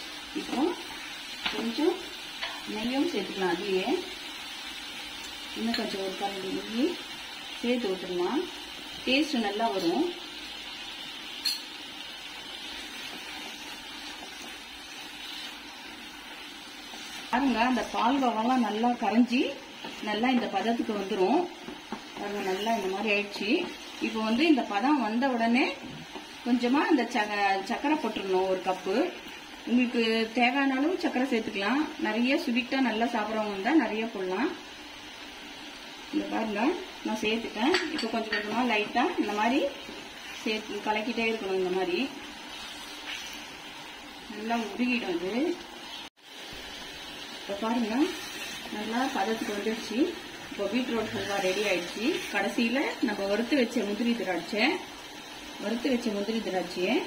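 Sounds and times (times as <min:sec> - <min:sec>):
food sizzling in a frying pan: 0:00.0 - 0:57.0
wooden spatula scraping a pan: 0:42.5 - 0:43.5, 0:50.4 - 0:52.5.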